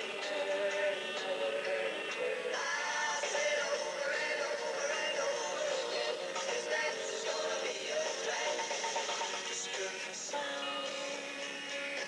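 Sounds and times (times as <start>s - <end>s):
pop song in background: 0.0s - 12.0s.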